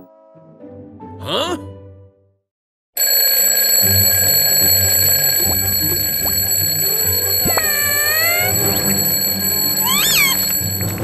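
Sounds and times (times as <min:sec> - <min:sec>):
toy alarm clock ringing: 0:03.0 - 0:11.0.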